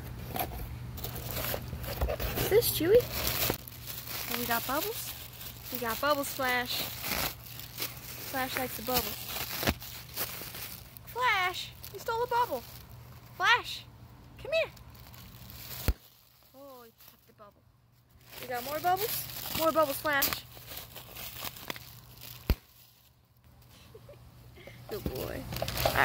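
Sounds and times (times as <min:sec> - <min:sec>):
plastic packaging crackling: 0:00.2 - 0:13.6, 0:14.4 - 0:17.5, 0:18.1 - 0:23.4, 0:24.9 - 0:26.0.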